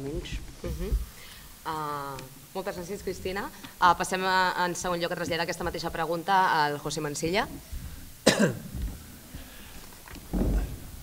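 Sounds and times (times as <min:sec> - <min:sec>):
man coughing: 0:08.2 - 0:08.7.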